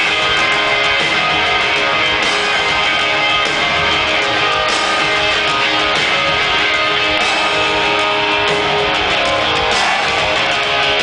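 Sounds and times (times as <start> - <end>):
punk rock band playing: 0.0 - 11.0.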